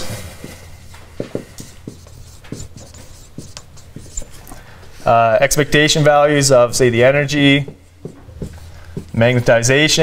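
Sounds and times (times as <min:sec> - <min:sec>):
marker scratching on whiteboard: 0:01.2 - 0:04.4, 0:07.7 - 0:09.4.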